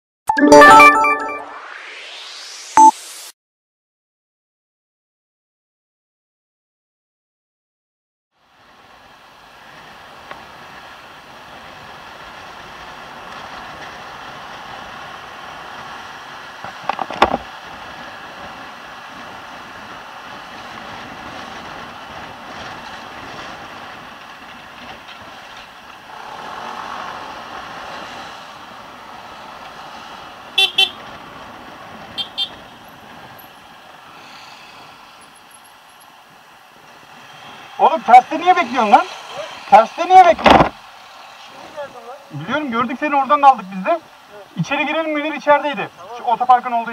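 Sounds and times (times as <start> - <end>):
vehicle horn toots: 30.6 - 31.0, 32.2 - 32.7.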